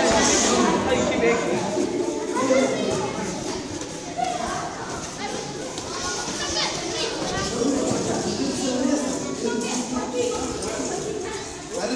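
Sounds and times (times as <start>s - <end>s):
children chattering: 0.0s - 11.9s.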